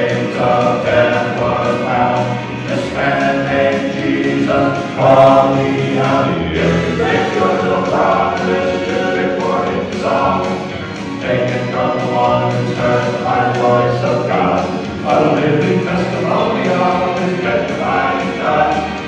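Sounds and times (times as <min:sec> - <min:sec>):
male quartet singing in harmony: 0:00.0 - 0:19.0.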